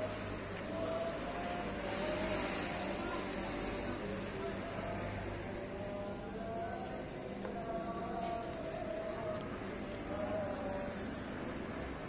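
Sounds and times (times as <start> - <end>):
faint engine hums: 0.0 - 12.0
motor traffic noise: 0.0 - 12.0.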